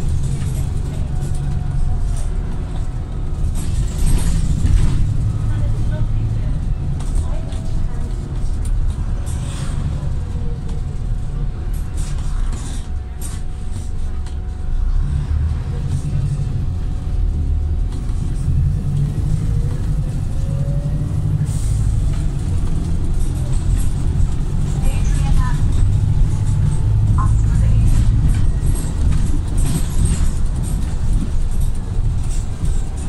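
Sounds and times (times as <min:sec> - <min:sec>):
bus engine rumble: 0:00.0 - 0:33.0.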